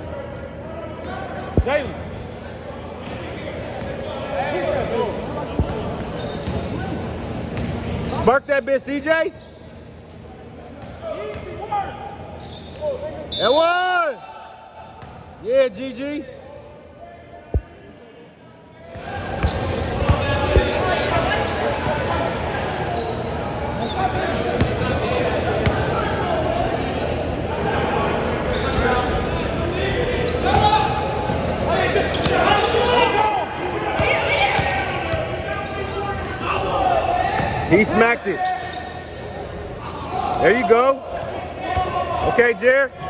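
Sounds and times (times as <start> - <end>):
players shouting: 19.0 - 39.2, 39.8 - 43.0.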